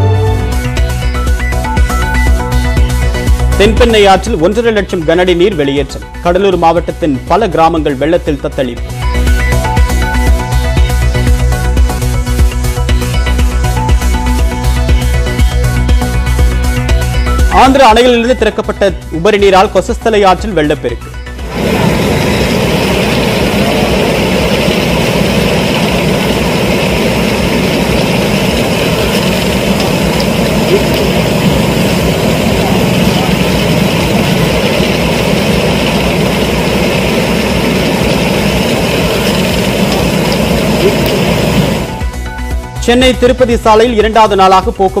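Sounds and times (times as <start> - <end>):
faint background music: 17.4 - 21.2, 42.6 - 45.0
floodwater roaring: 21.4 - 42.0.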